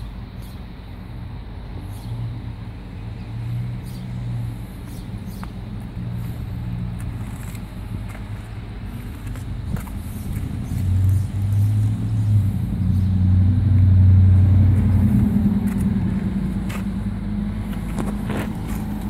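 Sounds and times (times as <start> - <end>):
diesel engine idling: 2.5 - 19.0.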